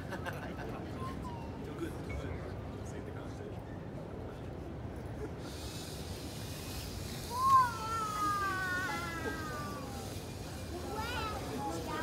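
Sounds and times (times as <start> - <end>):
suction fan high hiss: 5.4 - 12.0.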